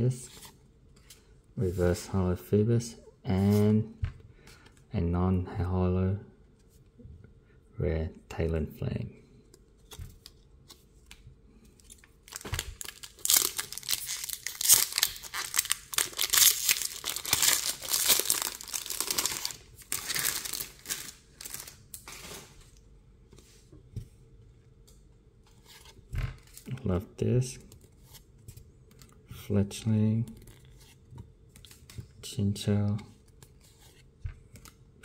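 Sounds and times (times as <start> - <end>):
foil wrapper crinkling and tearing: 12.3 - 22.4.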